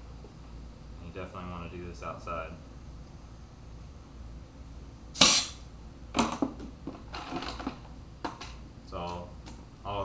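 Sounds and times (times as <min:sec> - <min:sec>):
compressed air blast: 0:05.1 - 0:05.7.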